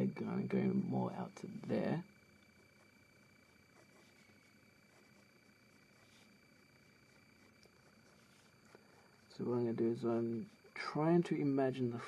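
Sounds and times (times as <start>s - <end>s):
faint high-pitched hum: 0.0s - 12.0s.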